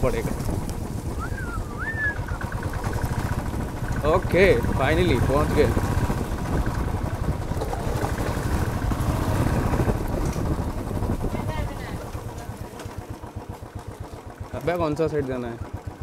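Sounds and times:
single-cylinder motorcycle engine: 0.0 - 16.0.

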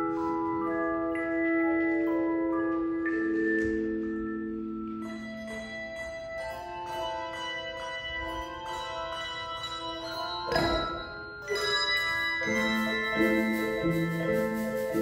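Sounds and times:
handbell choir playing: 0.0 - 15.0.

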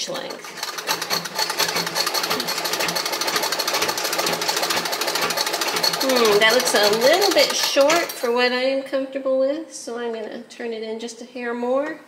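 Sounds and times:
sewing machine clattering: 0.0 - 8.3.

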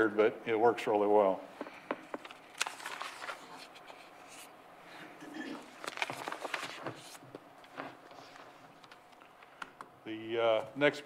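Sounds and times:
paper rustling: 2.2 - 4.5, 5.7 - 8.9.

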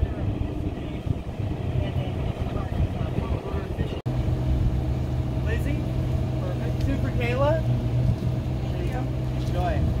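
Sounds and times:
engine humming: 0.0 - 10.0.

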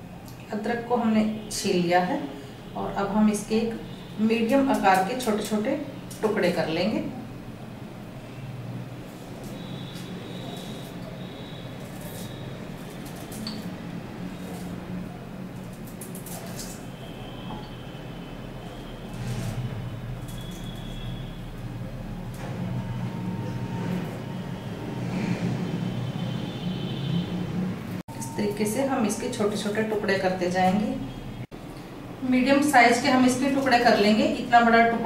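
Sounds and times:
knife scraping peeling ginger: 9.1 - 16.9.

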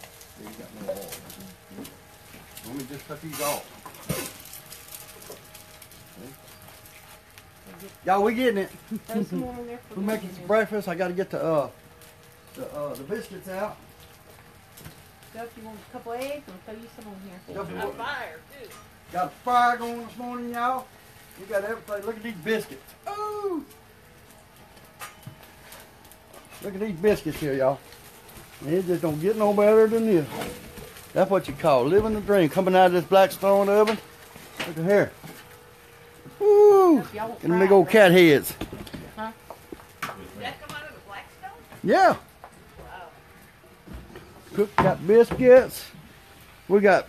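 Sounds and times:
food sizzling on a griddle: 0.0 - 23.9, 24.8 - 42.2, 43.9 - 47.0.

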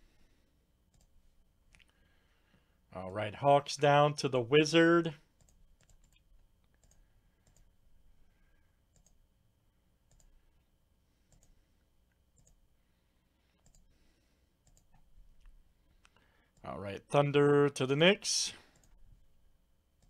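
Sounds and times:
computer mouse clicks: 0.9 - 1.1, 5.4 - 7.7, 8.9 - 9.2, 10.1 - 10.4, 11.3 - 11.6, 12.4 - 12.6, 13.6 - 13.9, 14.6 - 16.7.

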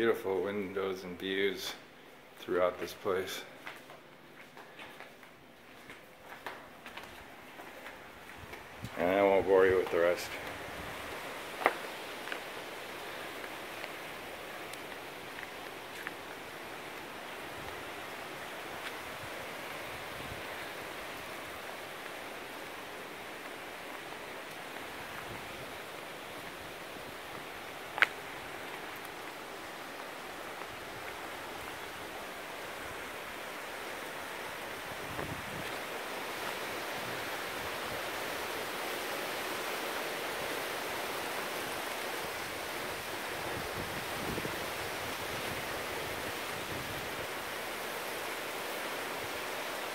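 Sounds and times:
outdoor ambient noise: 0.0 - 49.9.

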